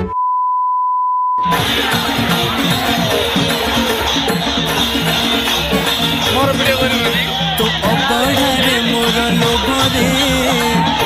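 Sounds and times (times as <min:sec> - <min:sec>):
steady test tone beep: 0:00.0 - 0:01.6
music: 0:01.4 - 0:11.0.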